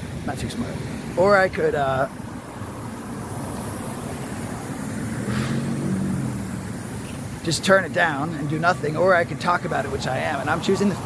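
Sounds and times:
vehicle engine hum passing: 2.1s - 11.0s.

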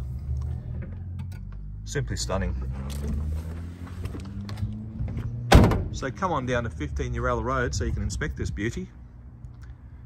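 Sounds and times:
car door shutting: 4.1s - 6.0s.

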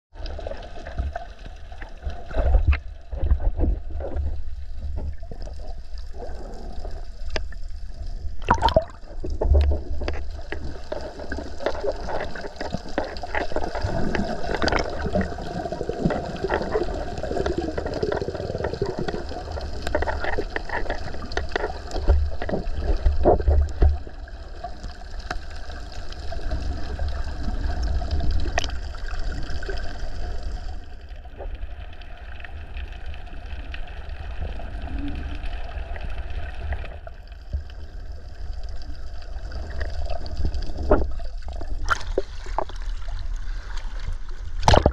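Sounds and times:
water gurgling and sloshing: 0.1s - 44.9s
small splashes: 8.4s - 18.4s, 41.1s - 44.9s.

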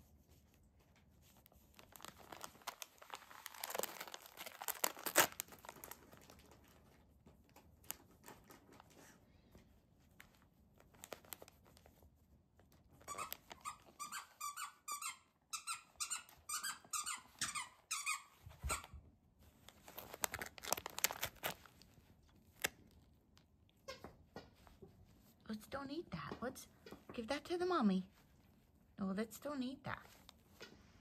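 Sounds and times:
foil crinkling and rustling: 1.3s - 8.9s, 10.2s - 11.9s, 13.0s - 13.6s, 19.5s - 23.0s.

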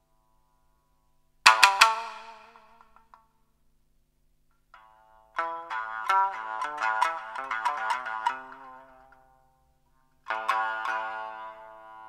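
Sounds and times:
plucked shamisen strikes: 1.4s - 3.2s, 4.7s - 9.5s, 10.2s - 12.0s.

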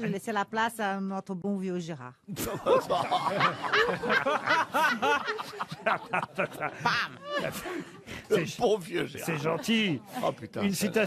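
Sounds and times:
group of people laughing: 2.3s - 8.4s, 9.0s - 11.0s.

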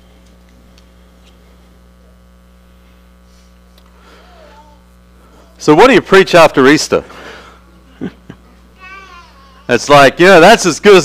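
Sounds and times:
low electrical mains hum: 0.0s - 11.0s.

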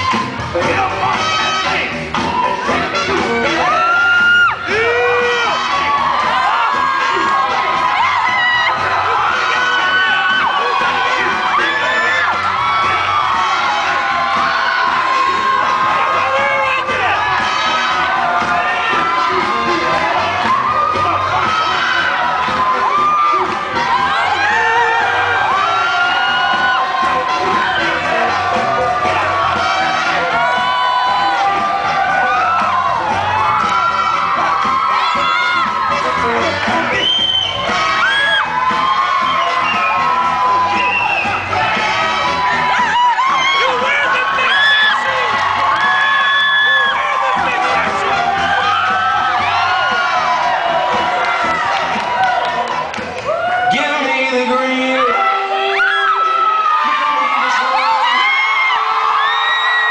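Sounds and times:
crowd cheering and whooping: 0.0s - 59.9s
loud dance music: 0.0s - 59.9s.

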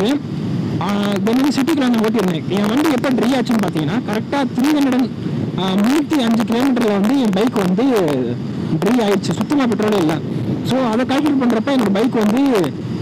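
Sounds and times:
person talking: 0.0s - 0.2s, 0.8s - 12.8s
wind noise: 0.0s - 13.0s.

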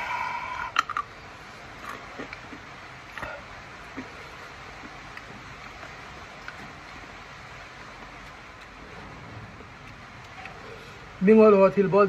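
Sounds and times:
low background hiss: 0.0s - 12.0s.

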